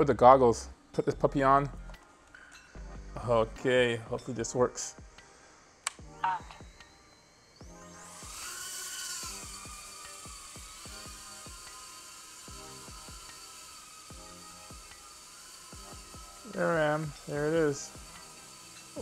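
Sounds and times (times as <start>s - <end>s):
faint background music with beat: 0.0s - 19.0s
drone propellers whirring: 4.9s - 19.0s.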